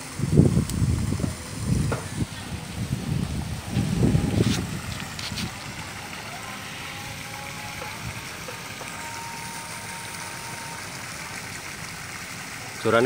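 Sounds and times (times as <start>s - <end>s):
fish splashing in water: 0.6s - 13.0s.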